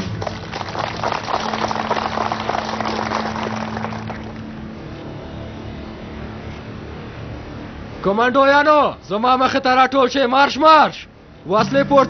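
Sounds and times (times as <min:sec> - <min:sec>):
crowd clapping: 0:00.0 - 0:04.6.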